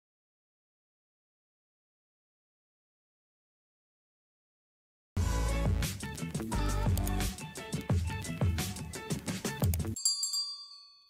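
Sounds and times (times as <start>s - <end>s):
music with steady beat: 5.2s - 10.0s
bright bell ding: 10.0s - 11.0s.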